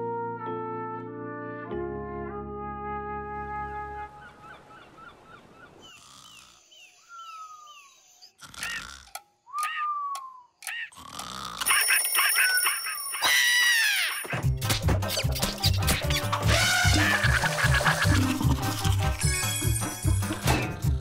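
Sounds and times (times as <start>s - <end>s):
brass chord: 0.0s - 3.5s
playful cartoon music: 0.0s - 4.1s, 11.6s - 21.0s.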